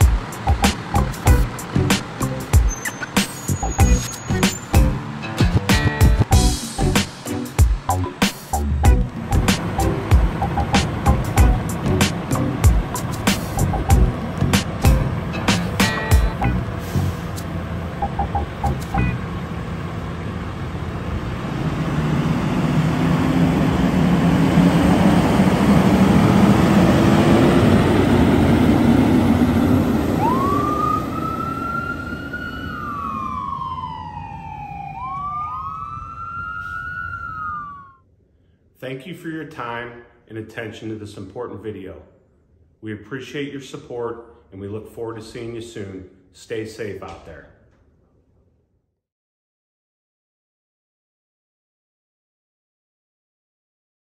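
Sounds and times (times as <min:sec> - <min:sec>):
fire engine diesel pulling away: 0:00.0 - 0:37.9
electronic siren wailing: 0:02.6 - 0:04.7, 0:18.0 - 0:19.2, 0:30.0 - 0:38.0.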